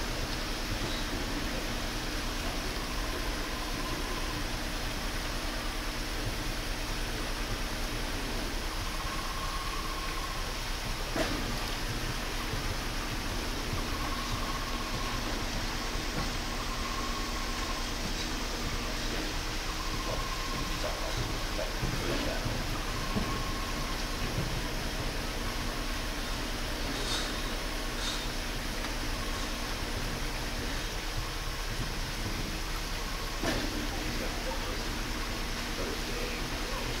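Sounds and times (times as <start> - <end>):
low hum of fan: 0.0 - 37.0
faint whistle-like tones: 8.7 - 10.6, 13.7 - 24.2.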